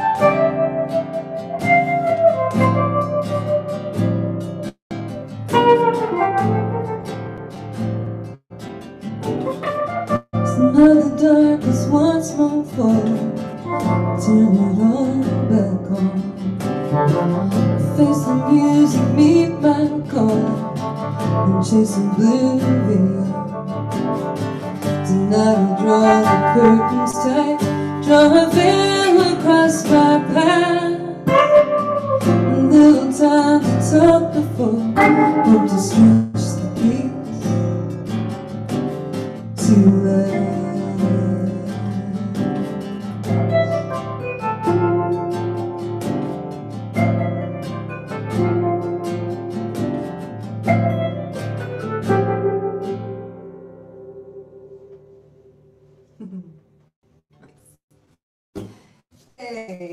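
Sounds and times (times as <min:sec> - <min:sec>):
strummed acoustic guitar: 0:00.0 - 0:55.2
electric guitar playing: 0:00.0 - 0:55.4
woman singing: 0:10.4 - 0:16.4, 0:17.4 - 0:23.6, 0:25.0 - 0:38.0, 0:39.6 - 0:42.6.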